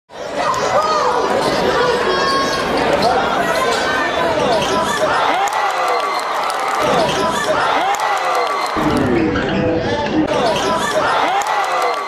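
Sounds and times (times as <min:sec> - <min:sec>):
voices of players and spectators: 0:00.1 - 0:12.0.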